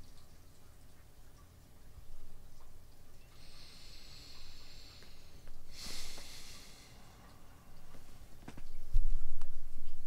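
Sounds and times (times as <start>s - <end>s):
person breathing out through nose: 3.4s - 7.2s.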